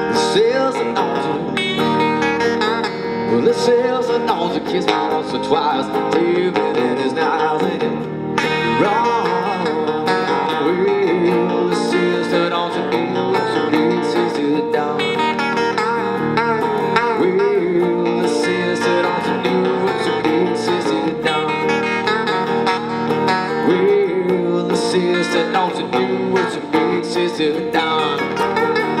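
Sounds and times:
lead electric guitar bending notes: 0.0s - 29.0s
rhythm electric guitar: 0.0s - 29.0s.

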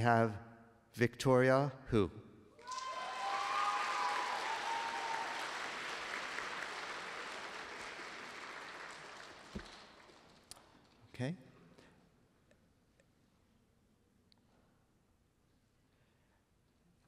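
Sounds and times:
audience applauding: 2.6s - 10.6s.

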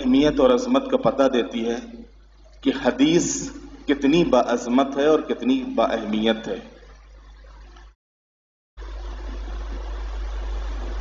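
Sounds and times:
constant low hum: 0.0s - 8.0s, 8.8s - 11.0s.

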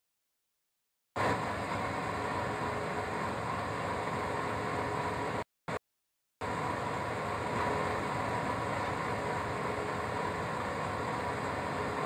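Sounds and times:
diesel locomotive running: 1.2s - 5.4s, 6.4s - 12.0s
faint steady whine: 1.2s - 5.4s, 6.4s - 12.0s.

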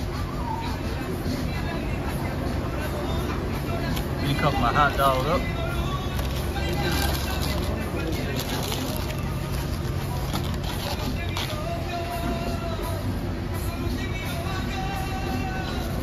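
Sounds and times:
distant voices: 0.0s - 16.0s
faint music: 0.0s - 16.0s.

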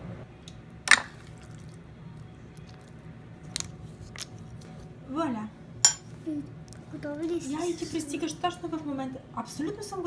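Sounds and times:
low steady hum: 0.0s - 7.4s.

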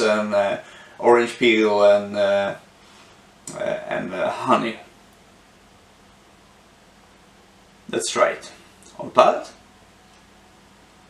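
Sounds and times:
man's voice: 0.0s - 2.6s, 3.5s - 4.9s, 7.9s - 9.6s.

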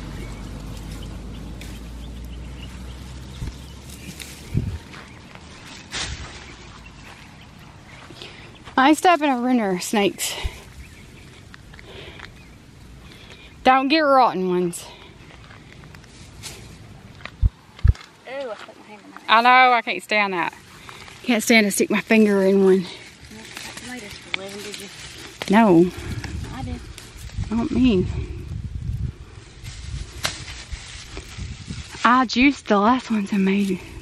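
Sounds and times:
dull low thumps: 0.0s - 5.2s, 17.1s - 18.0s
low uneven rumble: 0.0s - 18.2s
rustling of plants: 0.0s - 34.0s.

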